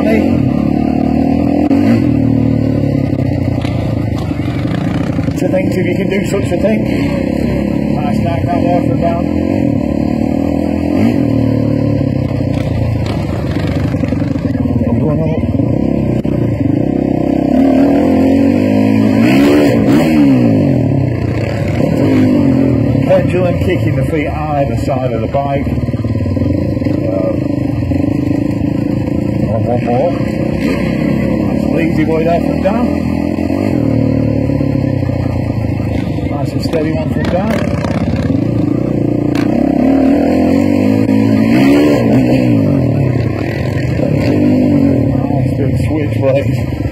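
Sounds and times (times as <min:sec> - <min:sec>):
dirt bike engine revving: 0:00.0 - 0:46.9.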